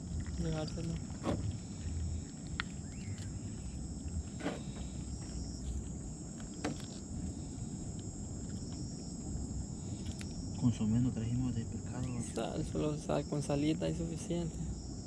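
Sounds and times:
low rumble: 0.0 - 8.6
night insects chirring: 0.0 - 15.0.

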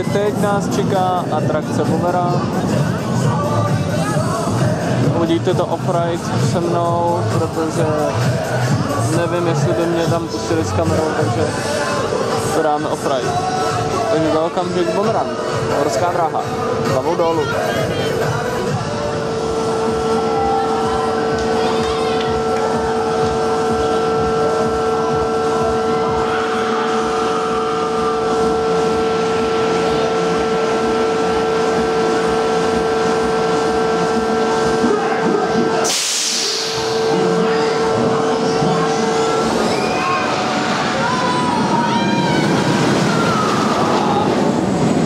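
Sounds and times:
machinery humming: 0.0 - 45.0
hiss of released air: 35.8 - 36.9.

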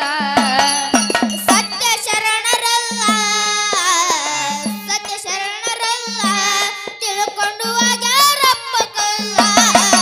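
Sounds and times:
boy singing devotional song: 0.0 - 10.0.

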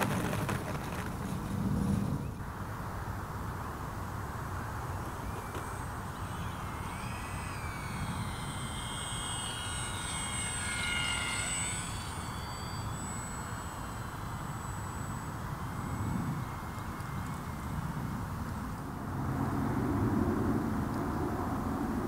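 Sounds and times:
wind rumble on microphone: 0.0 - 10.6, 11.2 - 22.0
model plane motor whine: 0.0 - 22.0.

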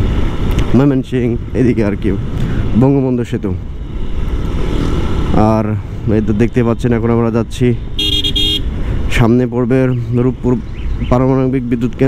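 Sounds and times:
motorcycle wind and engine rush: 0.0 - 12.0
rider speaking: 0.6 - 3.7, 5.2 - 8.0, 9.0 - 12.0.

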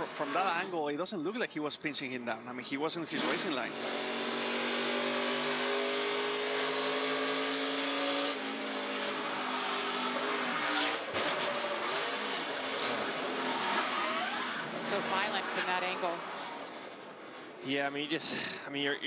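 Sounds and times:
race car engine at speed: 0.0 - 0.7, 3.0 - 17.6.

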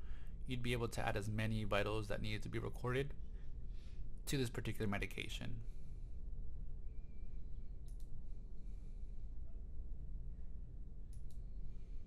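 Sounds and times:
low steady hum: 0.0 - 12.0
computer mouse clicks: 7.8 - 8.2, 11.0 - 11.5.

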